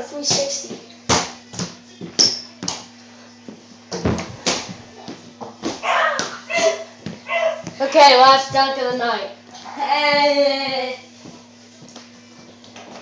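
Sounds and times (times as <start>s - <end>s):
thumps of basketball and rim: 3.9s - 4.8s
boys laughing: 5.9s - 7.6s.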